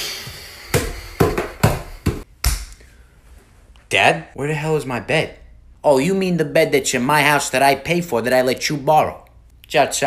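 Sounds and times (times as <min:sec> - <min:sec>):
heavy footsteps thudding: 0:00.2 - 0:02.8.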